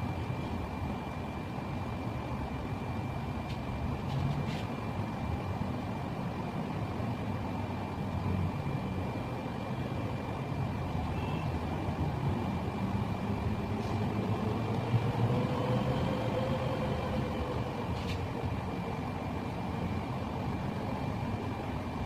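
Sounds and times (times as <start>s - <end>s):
faint high-pitched whine: 0.0s - 22.0s
low mechanical rumble: 0.0s - 22.0s.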